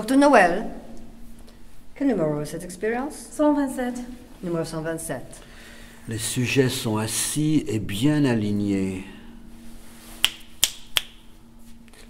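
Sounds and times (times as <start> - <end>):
faint steady hum: 0.0 - 12.0
fingers snapping: 10.2 - 11.2.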